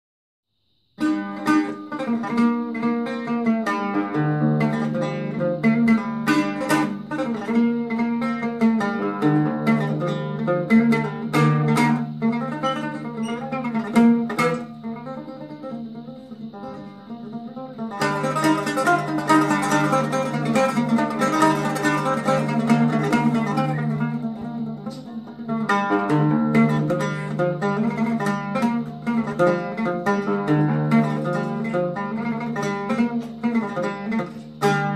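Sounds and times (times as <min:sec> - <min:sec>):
solo oud playing a melody: 0:01.0 - 0:34.9.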